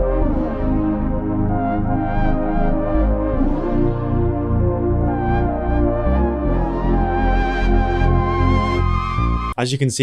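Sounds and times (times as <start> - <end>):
brassy synth lead melody: 0.0 - 9.6
low bass synth: 0.0 - 9.6.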